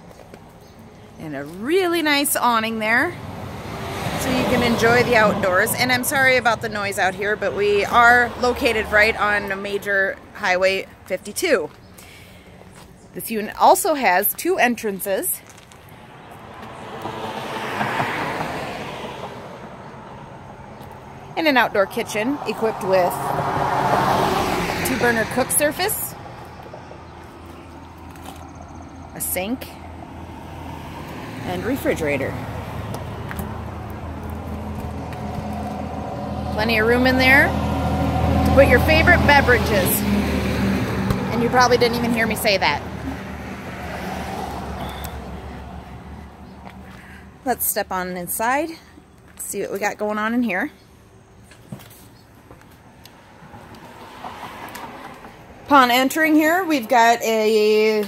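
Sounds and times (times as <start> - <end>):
highway traffic rumble: 0.0 - 58.0.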